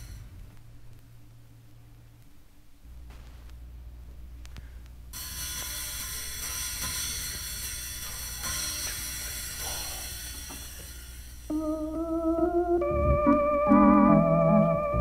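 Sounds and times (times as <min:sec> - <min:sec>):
record crackle: 0:00.0 - 0:05.1
faint hum: 0:00.0 - 0:15.0
lounge organ playing: 0:11.5 - 0:15.0.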